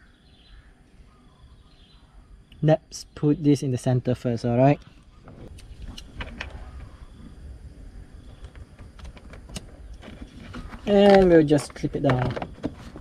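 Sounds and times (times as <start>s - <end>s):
low steady rumble: 0.0s - 13.0s.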